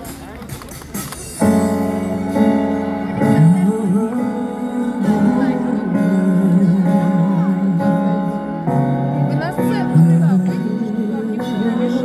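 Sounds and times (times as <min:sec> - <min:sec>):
live pop band playing: 0:00.0 - 0:12.0.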